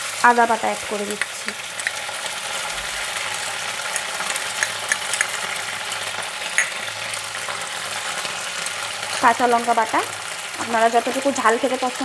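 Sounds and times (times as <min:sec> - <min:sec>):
spice paste sizzling in oil: 0:00.0 - 0:12.0.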